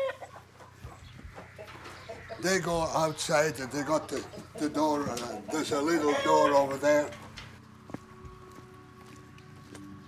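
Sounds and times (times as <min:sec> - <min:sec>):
chickens clucking: 0:00.0 - 0:07.6.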